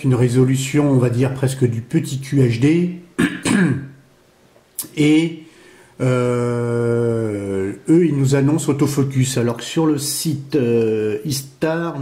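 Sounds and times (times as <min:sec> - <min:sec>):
man clearing his throat: 0:03.2 - 0:04.0.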